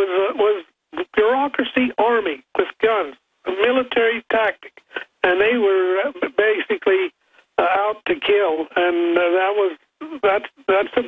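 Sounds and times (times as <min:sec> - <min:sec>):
man speaking over telephone: 0:00.0 - 0:11.0.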